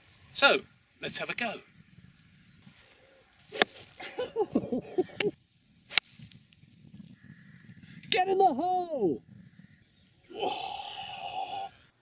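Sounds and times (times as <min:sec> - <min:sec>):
person calling out: 0:08.2 - 0:09.2, 0:10.3 - 0:11.7.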